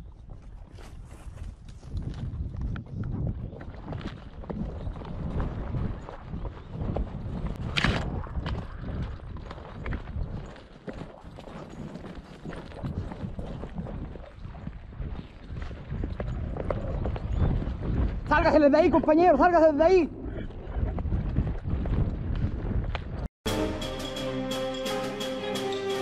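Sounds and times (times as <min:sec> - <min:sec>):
footsteps on stony ground: 0:00.0 - 0:18.3.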